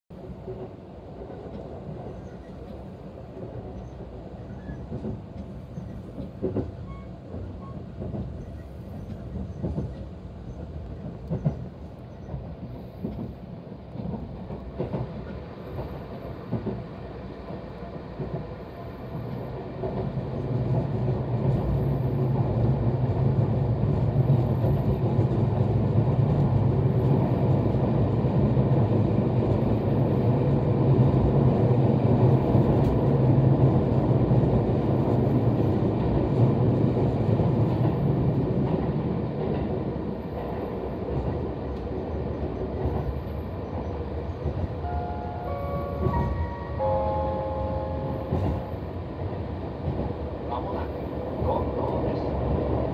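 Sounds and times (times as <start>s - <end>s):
electric train rumbling in tunnel: 0.1s - 52.9s.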